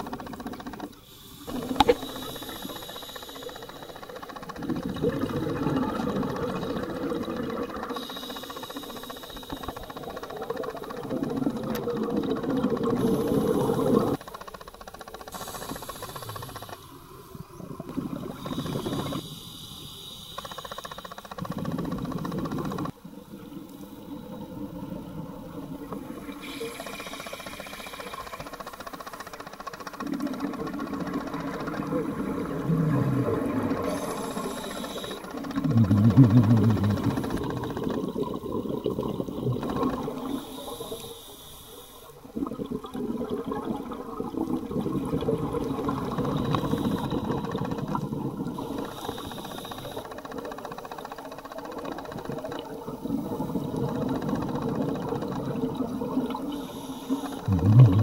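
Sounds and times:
underwater regulator exhaled bubbles: 4.0s - 8.2s, 9.6s - 14.2s, 30.0s - 40.5s, 42.3s - 50.0s, 52.2s - 58.0s.

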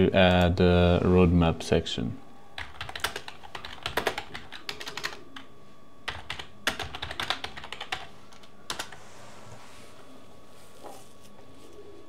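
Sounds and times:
typing on a computer keyboard: 2.6s - 5.5s, 6.1s - 9.0s.

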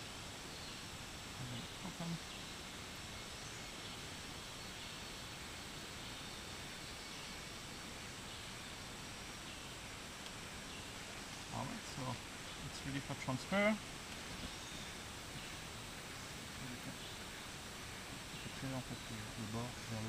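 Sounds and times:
background hiss: 0.0s - 20.0s.

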